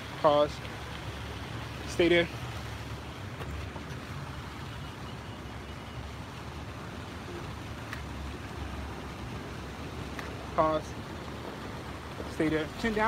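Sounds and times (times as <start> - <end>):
city traffic rumble: 0.0 - 13.0.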